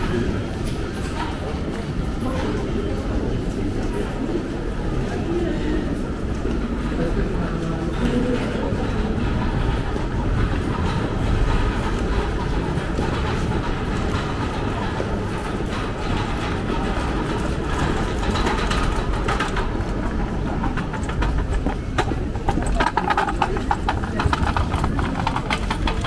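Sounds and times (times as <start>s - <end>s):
metro train rumbling and rattling: 0.0s - 26.0s.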